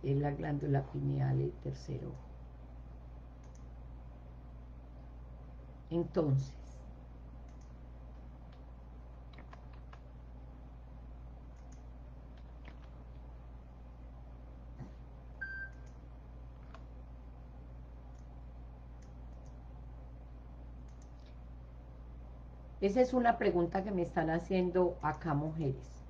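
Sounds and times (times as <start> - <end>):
steady low hum: 0.0 - 26.0
faint clicks: 3.4 - 3.7, 7.4 - 8.6, 11.5 - 13.2, 19.0 - 19.6, 20.8 - 21.4
faint short clicks: 3.4 - 3.7, 20.8 - 21.4.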